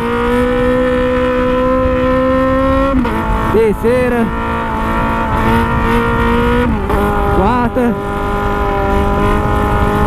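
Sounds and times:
motorcycle engine accelerating: 0.0s - 10.0s
wind on microphone: 0.0s - 10.0s.

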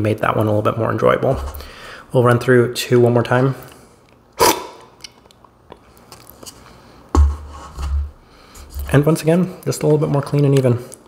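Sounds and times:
sharp coffee slurp: 4.4s - 4.8s.

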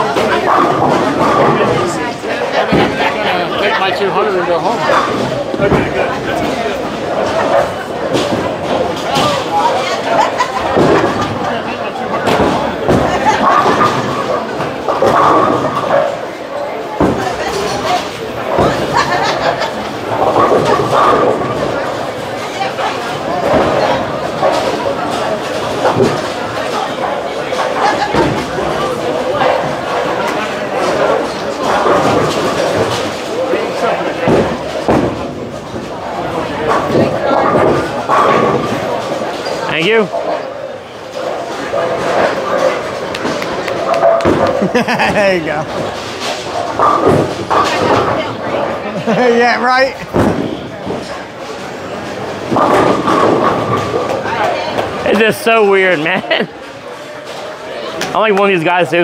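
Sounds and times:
bowling balls crashing into pins: 0.0s - 3.2s, 4.8s - 48.8s, 50.0s - 55.4s
chatter of many voices: 0.0s - 59.0s.

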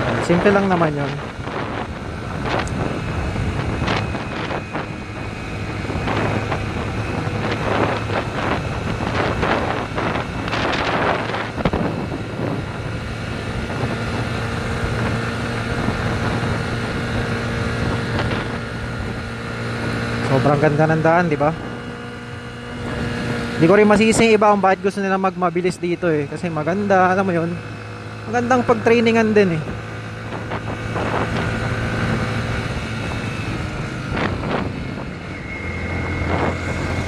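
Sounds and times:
motorcycle engine cruising: 0.0s - 37.0s
wind buffeting microphone: 0.0s - 37.0s.

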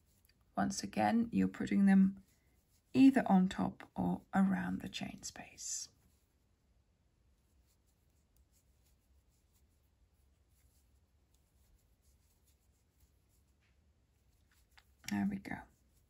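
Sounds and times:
crochet hook ticks and rustles: 10.4s - 16.0s.

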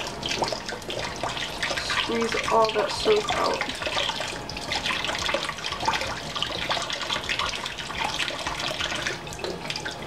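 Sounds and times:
water running into sink: 0.0s - 10.0s.

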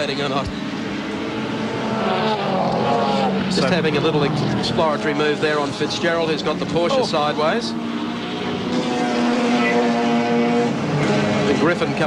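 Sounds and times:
racing car engines: 0.0s - 12.0s.

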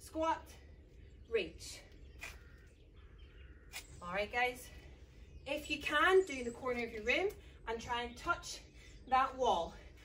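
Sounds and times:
faint bird chirps: 0.7s - 9.4s.

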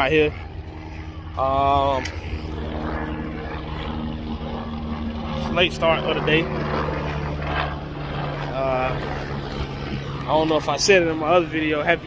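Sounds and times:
engine droning: 0.0s - 12.0s.

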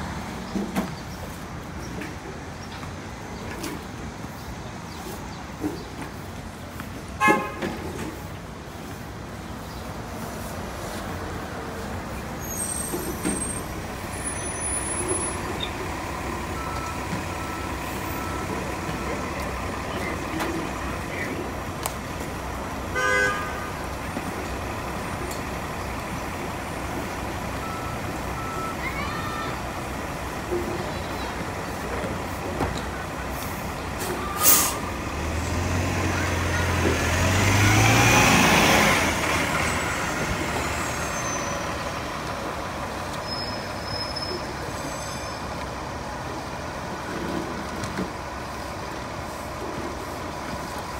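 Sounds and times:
bus engine running: 0.0s - 50.9s
air brakes hiss: 34.0s - 34.9s.

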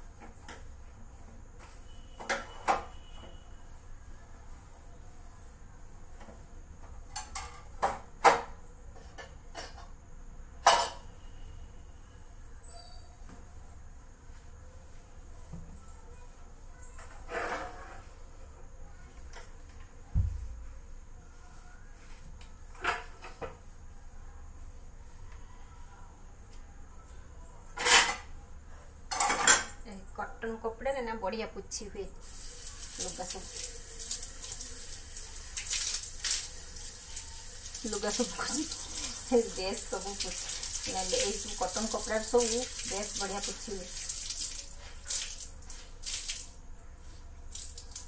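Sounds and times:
tap water running into sink: 32.2s - 46.6s.

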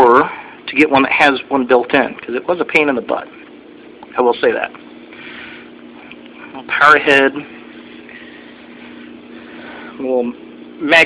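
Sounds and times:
aquarium pump hum: 0.0s - 11.0s.

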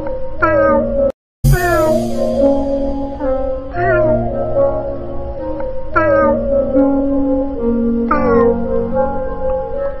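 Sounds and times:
background music with sustained notes: 0.0s - 10.0s.

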